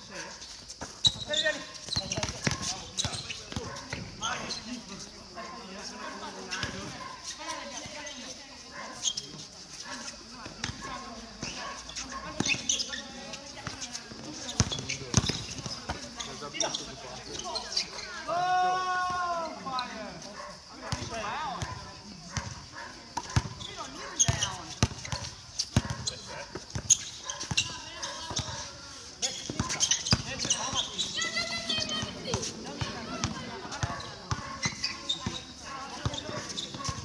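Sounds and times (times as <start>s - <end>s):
basketball bouncing on hard court: 1.0s - 4.1s, 14.5s - 16.0s, 23.2s - 28.6s, 29.4s - 31.0s
players calling out: 25.6s - 37.0s.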